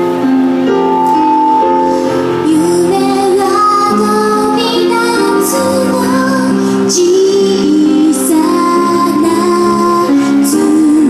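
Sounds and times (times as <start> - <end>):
backing music: 0.0 - 11.0
woman singing into microphone: 1.8 - 11.0.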